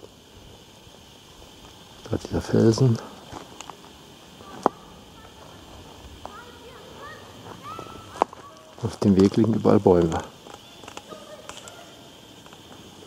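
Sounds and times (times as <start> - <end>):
low outdoor hush: 0.0 - 13.0
sharp clicks: 10.4 - 12.8.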